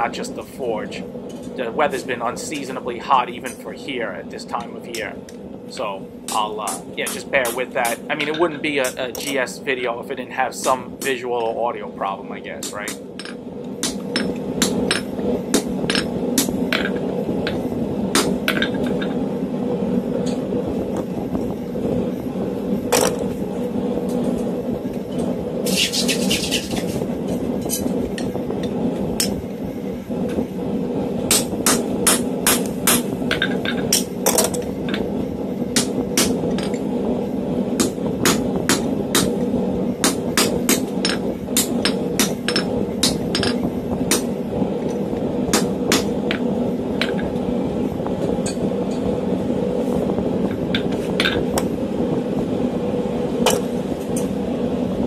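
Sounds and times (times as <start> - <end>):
fan running: 0.0 - 55.0
forge humming: 0.0 - 55.0
hammer striking steel on anvil: 6.3 - 9.4, 40.0 - 44.2, 45.5 - 46.1
short high hiss: 25.6 - 27.0.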